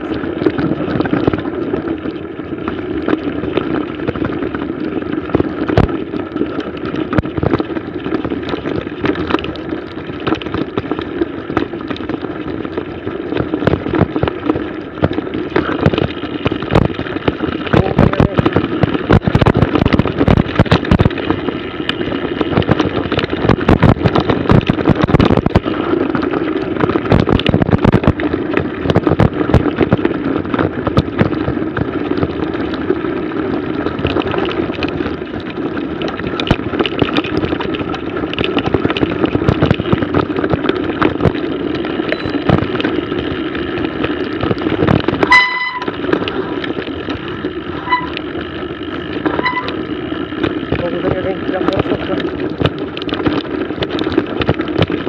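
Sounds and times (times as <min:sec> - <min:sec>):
bike tyres and frame rattling: 0:00.0 - 0:55.0
wind on microphone: 0:00.0 - 0:55.0
short ringing tones: 0:42.1 - 0:42.5, 0:45.2 - 0:46.0, 0:47.8 - 0:48.2, 0:49.3 - 0:49.8.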